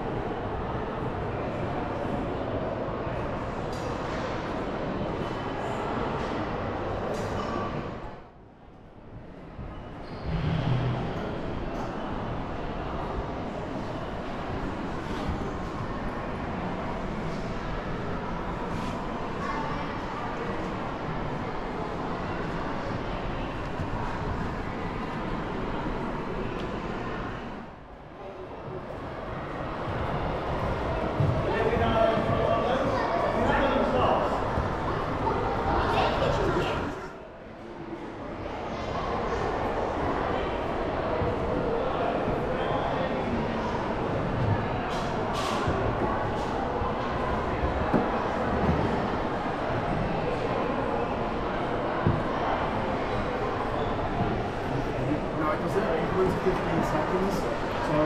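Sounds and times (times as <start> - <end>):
indistinct crowd chatter indoors: 0.0 - 58.0.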